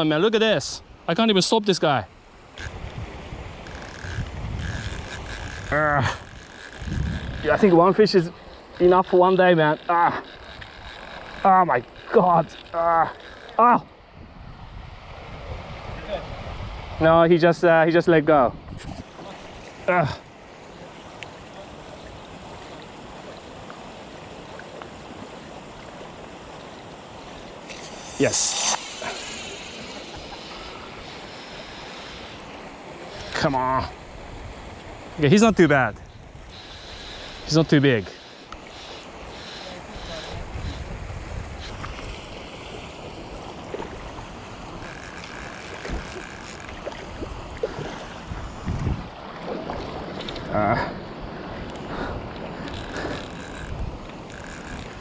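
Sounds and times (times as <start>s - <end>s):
water noise: 0.4s - 15.8s, 18.8s - 35.7s, 36.3s - 55.0s
wind buffeting microphone: 2.6s - 7.8s, 40.4s - 42.2s, 47.1s - 49.2s
thin high whine: 3.6s - 13.8s, 27.6s - 33.4s.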